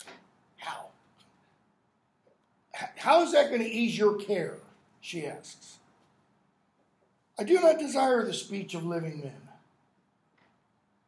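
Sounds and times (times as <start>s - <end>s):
man lecturing: 2.7s - 5.9s, 7.4s - 9.6s.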